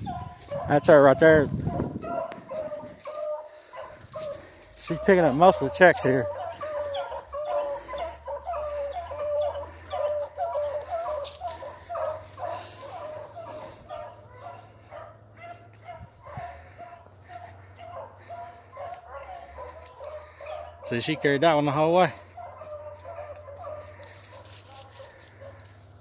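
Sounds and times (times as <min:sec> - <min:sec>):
hounds baying: 0:00.0 - 0:26.0.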